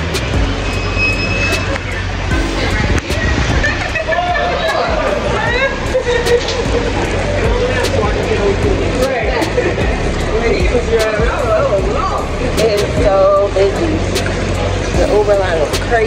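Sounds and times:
crowd chatter: 0:00.0 - 0:16.0
low rumble of traffic: 0:00.0 - 0:16.0.

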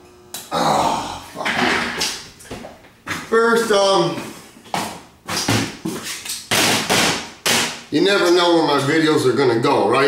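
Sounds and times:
sharp knocks: 0:06.5 - 0:07.8.

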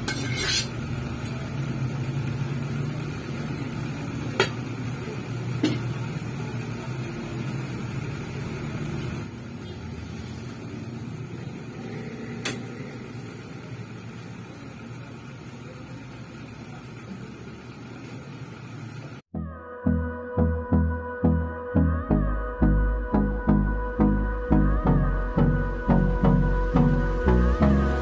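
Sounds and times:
metal cookware clinking: 0:00.0 - 0:00.8.

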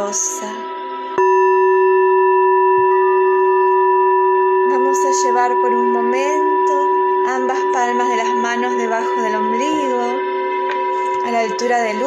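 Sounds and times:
singing bowl ringing: 0:00.0 - 0:12.0.

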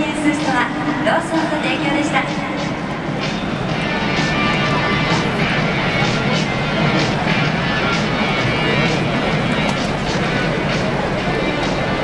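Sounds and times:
music over public-address system: 0:00.0 - 0:12.0
stadium crowd din: 0:00.0 - 0:12.0.

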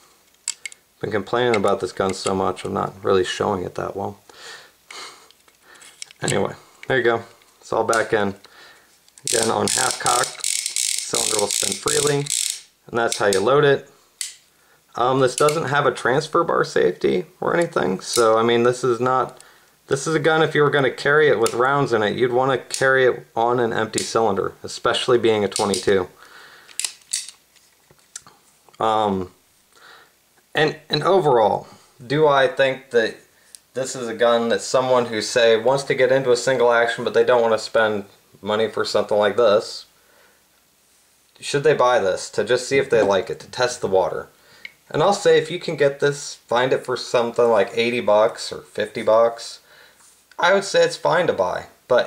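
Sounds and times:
person speaking: 0:00.0 - 0:04.3, 0:06.0 - 0:08.6, 0:09.2 - 0:26.2, 0:28.1 - 0:29.4, 0:30.5 - 0:39.9, 0:41.4 - 0:49.7, 0:50.3 - 0:52.0
soft nasal breaths: 0:04.2 - 0:07.6, 0:08.4 - 0:09.1, 0:26.1 - 0:26.8, 0:29.6 - 0:30.3, 0:49.6 - 0:50.4.

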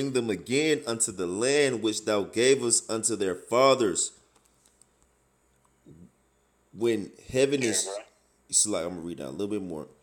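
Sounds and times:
man's voice murmuring: 0:07.5 - 0:08.1.

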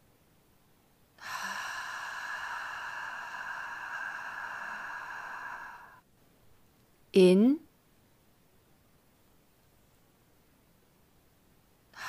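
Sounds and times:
woman exhaling: 0:01.2 - 0:06.0.

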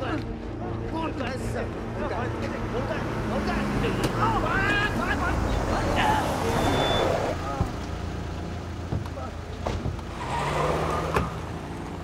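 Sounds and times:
car engine running: 0:02.3 - 0:10.2
men shouting: 0:03.4 - 0:07.4.

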